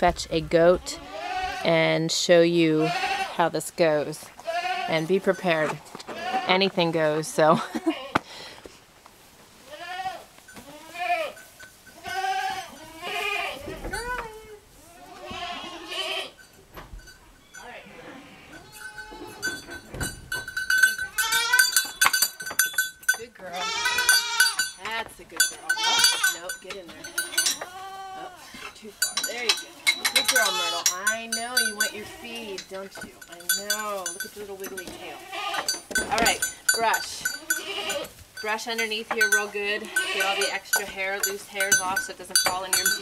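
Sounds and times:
goats bleating: 0.7 - 1.8, 2.7 - 3.6, 4.2 - 6.9, 9.6 - 16.4, 17.7 - 19.7, 20.9 - 21.9, 23.4 - 24.7, 25.4 - 38.2, 38.8 - 43.0.

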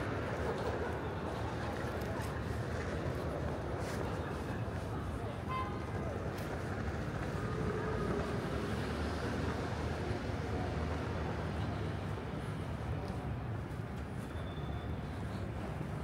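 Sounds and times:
low hum of city traffic: 0.0 - 16.0.

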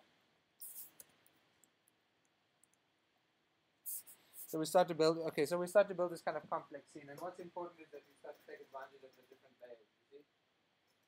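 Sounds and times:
faint hiss: 0.0 - 1.4, 3.8 - 10.3.

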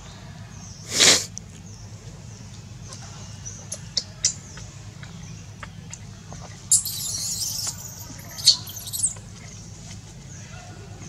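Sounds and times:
infant monkey squeaking: 6.7 - 9.2.

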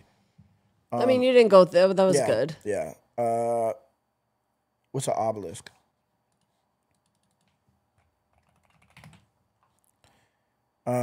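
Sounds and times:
faint keyboard typing: 6.3 - 10.1.

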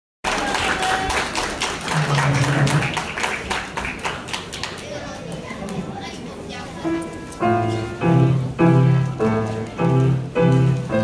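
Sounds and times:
audience clapping: 0.2 - 5.1.

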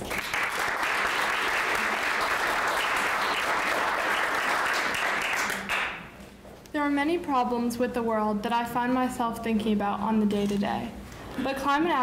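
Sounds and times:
group of people applauding: 0.0 - 6.1.

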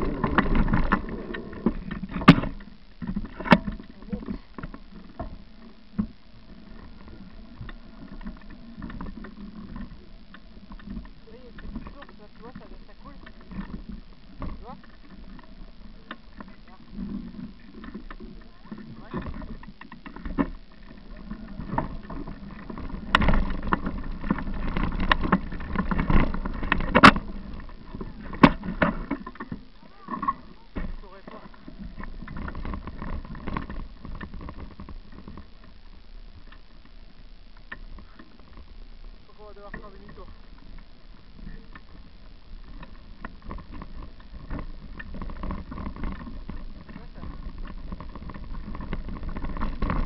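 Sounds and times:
bicycle rumbling on dirt trail: 0.0 - 50.0
bike rattling and knocking: 22.6 - 29.4.

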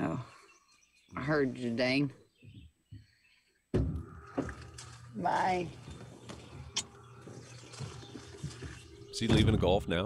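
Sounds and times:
thump: 3.7 - 4.6.

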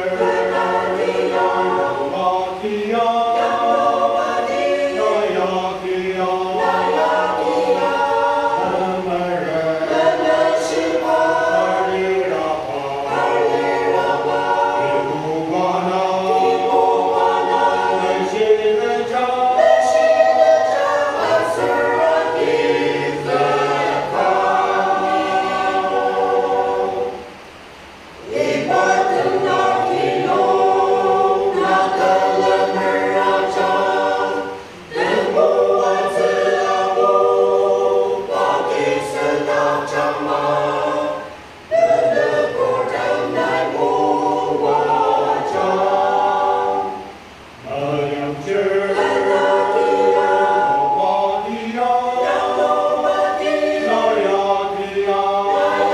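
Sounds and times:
choir singing a hymn: 0.0 - 55.9.

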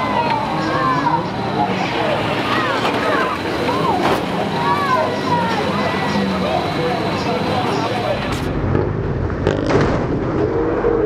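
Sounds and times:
van engines revving: 0.0 - 10.2.

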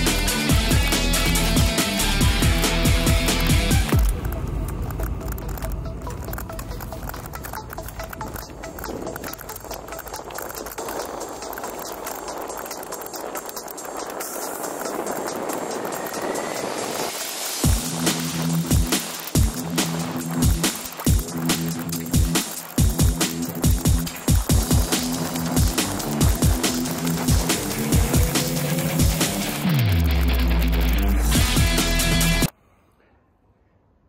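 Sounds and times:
background music with a beat: 0.0 - 4.2, 6.2 - 32.5
mountain bike rolling over dirt: 5.9 - 16.4
music with drum hits: 22.2 - 29.8.

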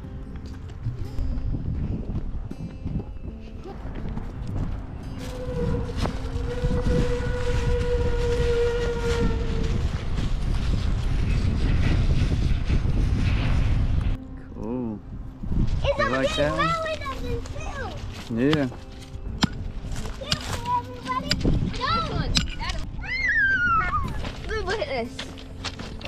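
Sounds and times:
footsteps on gravel: 0.1 - 12.4, 16.7 - 22.9, 23.8 - 26.0
wind on microphone: 0.9 - 24.7
child calling: 23.0 - 24.8.

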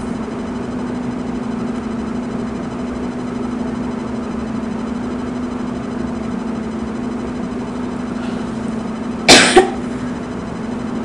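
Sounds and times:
steady low hum: 0.0 - 11.0
woman coughing: 9.3 - 10.0.

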